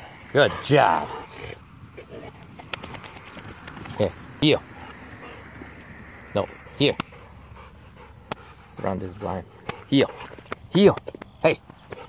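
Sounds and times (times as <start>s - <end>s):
dog breathing: 0.0s - 12.0s.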